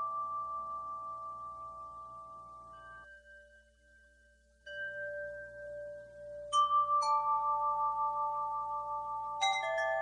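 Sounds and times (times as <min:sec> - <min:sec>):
bell-like chime tones: 0:00.0 - 0:10.0.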